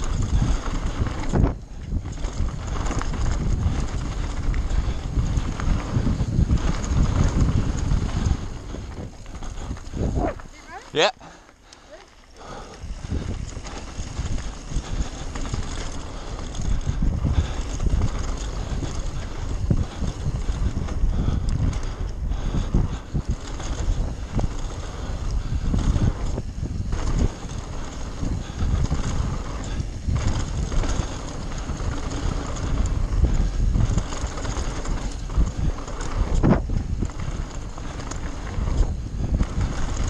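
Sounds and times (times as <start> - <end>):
tyre noise on dirt: 0.0 - 40.0
wind buffeting microphone: 0.0 - 40.0.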